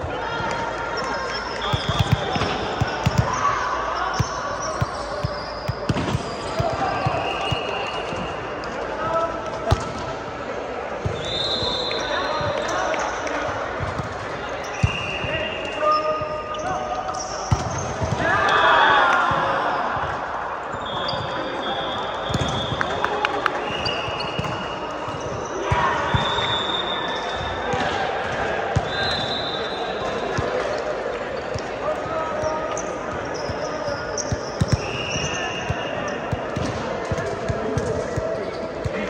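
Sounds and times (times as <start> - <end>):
players chatting and calling: 0.0 - 39.0
sneakers squeaking on court: 0.9 - 8.6, 20.7 - 22.9, 23.7 - 27.8, 30.2 - 39.0
volleyballs thudding: 4.2 - 8.2.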